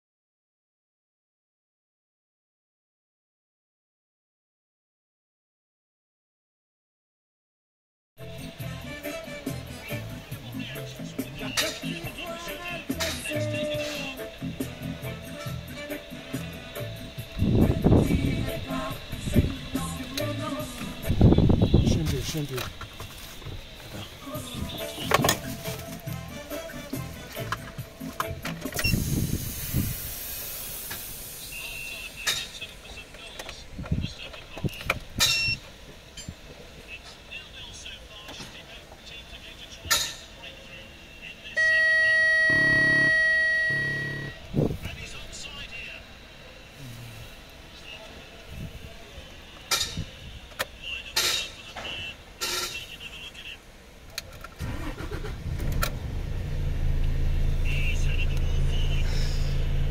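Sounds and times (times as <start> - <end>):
diesel engine starting and idling: 8.2 - 23.0, 23.6 - 33.0, 41.6 - 46.0, 54.3 - 59.9
dashboard warning buzzer: 41.6 - 44.4.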